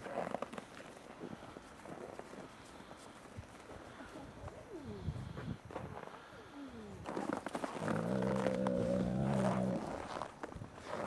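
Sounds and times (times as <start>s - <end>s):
wolf growling: 7.8s - 10.2s.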